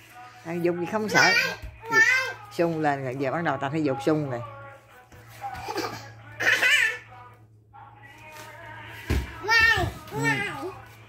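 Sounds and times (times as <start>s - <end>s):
child wordless vocal sounds: 1.1s - 2.5s, 9.4s - 10.8s
toddler falling on foam mat: 9.0s - 10.3s.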